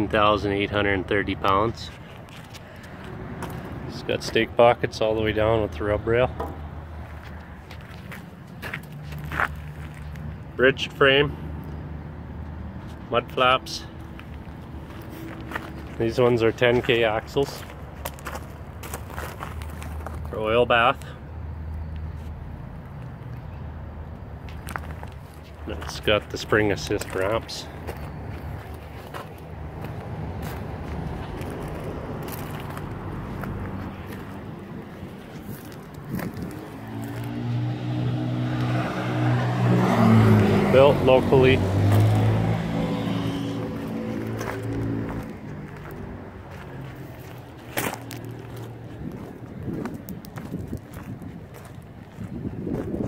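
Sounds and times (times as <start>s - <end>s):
footsteps on gravel: 1.8s - 4.5s, 6.4s - 10.4s, 13.9s - 20.6s, 24.4s - 38.0s, 41.7s - 53.0s
vehicle engine running: 40.1s - 52.3s.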